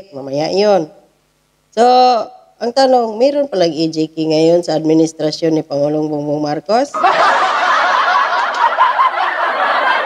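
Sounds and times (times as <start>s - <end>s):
crowd laughing: 7.0s - 10.0s.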